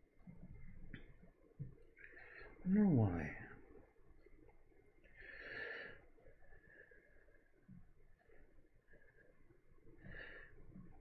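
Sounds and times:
soft breath through nose: 5.0s - 11.0s.

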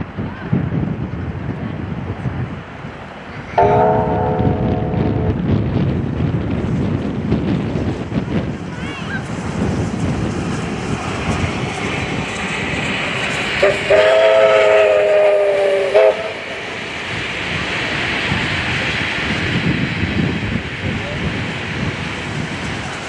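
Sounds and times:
distant running trains: 0.0s - 23.0s
steam locomotive rumbling past: 0.0s - 23.0s
wind hiss: 0.0s - 23.0s
chime steam whistle: 3.6s - 5.4s.

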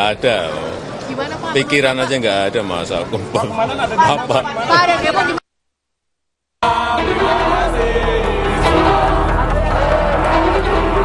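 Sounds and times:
people talking over one another: 0.0s - 5.4s, 6.6s - 11.0s.

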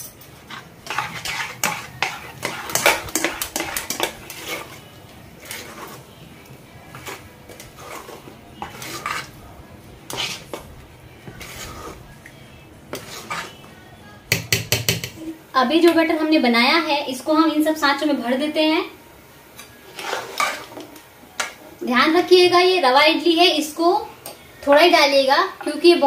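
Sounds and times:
spoon stirring thick batter: 0.3s - 15.2s.

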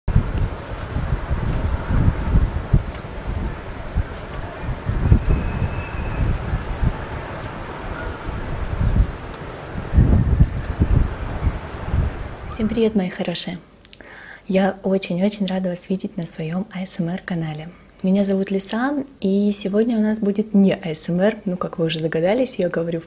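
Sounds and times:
wind buffeting microphone: 0.1s - 13.1s.

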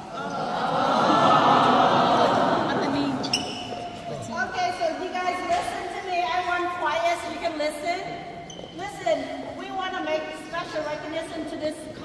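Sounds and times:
people talking in a large hall: 0.0s - 12.0s
sneaker squeak on wooden floor: 3.2s - 4.0s.

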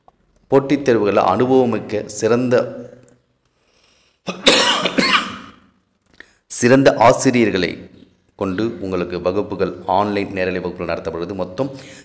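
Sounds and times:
man coughing: 4.3s - 5.6s.

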